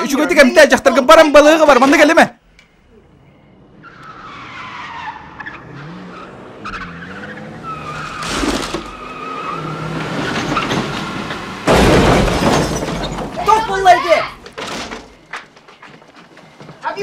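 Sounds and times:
car engine revving: 3.6s - 11.8s
tyres screeching: 3.7s - 17.0s.

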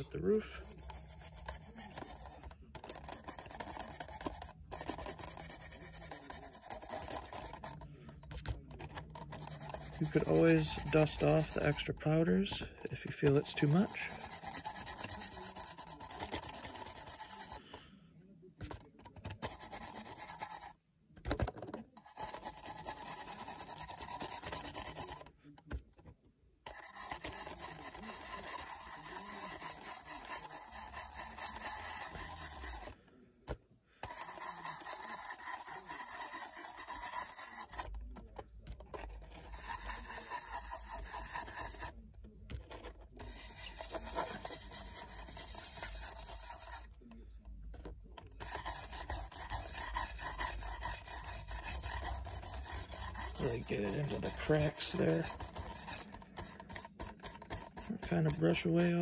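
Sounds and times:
paintbrush scrubbing on plastic: 0.0s - 17.8s, 18.6s - 20.8s, 22.0s - 25.4s, 26.6s - 33.0s, 34.0s - 59.0s.

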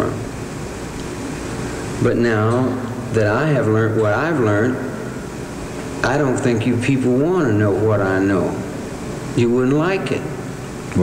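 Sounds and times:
recording hiss and rumble: 0.0s - 11.0s.

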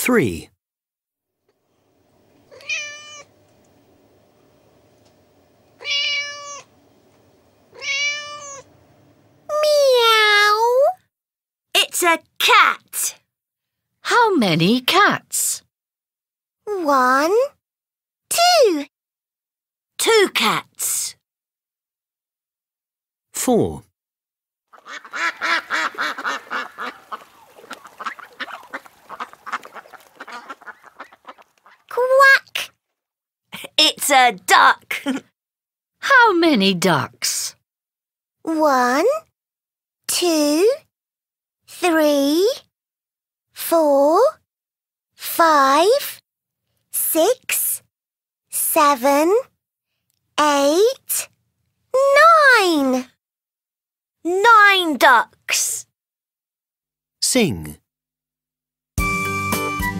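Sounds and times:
cat meowing: 2.5s - 3.3s, 5.8s - 6.7s, 7.7s - 8.7s
ducks quacking: 24.8s - 31.9s.

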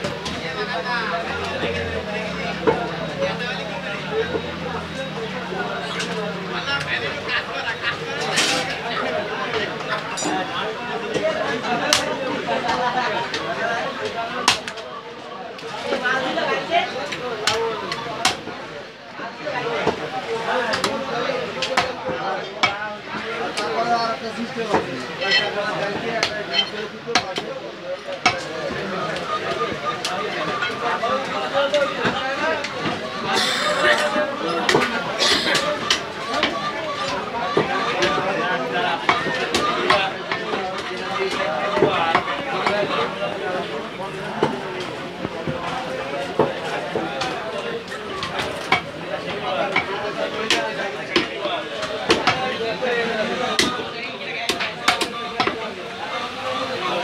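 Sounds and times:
chatter of voices: 0.0s - 57.0s
cleaver chopping meat and bone: 21.6s - 22.0s, 50.5s - 52.4s, 53.6s - 53.8s.

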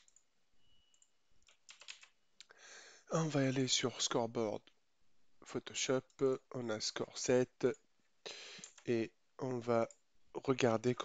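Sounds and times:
computer mouse clicks: 0.9s - 2.1s, 8.6s - 8.9s.

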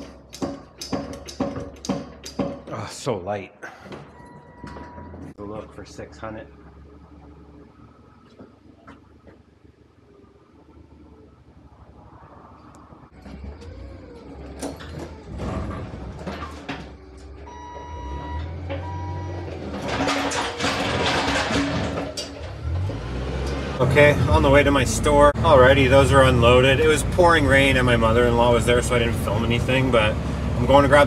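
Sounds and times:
pallet jack rattling on wooden floor: 0.0s - 2.7s, 19.6s - 22.8s
electronic beeps: 17.5s - 19.5s.

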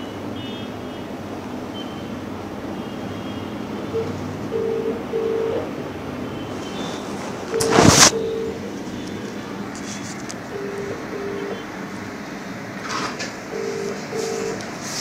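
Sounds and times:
phone handling rustle and knock: 7.5s - 8.2s
short beeps: 7.5s - 8.6s, 10.6s - 11.6s, 13.5s - 14.6s.

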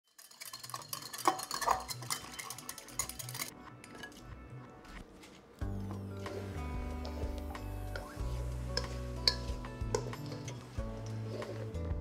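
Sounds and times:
utensils clinking against dishes: 0.1s - 4.3s, 8.0s - 11.7s.

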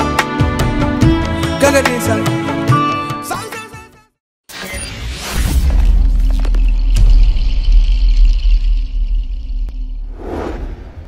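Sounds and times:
short whoosh: 10.0s - 11.0s.

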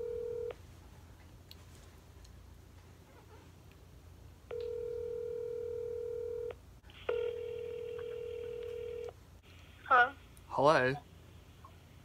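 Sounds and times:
phone ringback tone: 0.0s - 0.6s, 4.5s - 9.1s.

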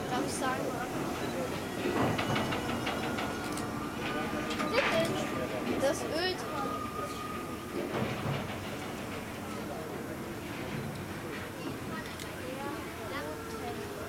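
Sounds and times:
bystanders talking: 0.0s - 14.0s
steam locomotive noise: 0.0s - 14.0s.

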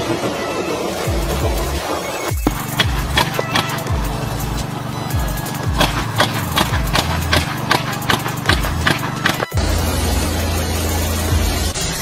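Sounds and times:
water jet spraying: 0.0s - 12.0s
sprinkler clicking: 2.4s - 4.2s.

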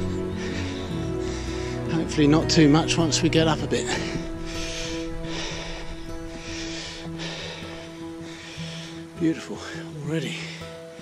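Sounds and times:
person breathing heavily: 0.0s - 1.9s, 3.8s - 9.2s
soft background music: 0.0s - 11.0s.

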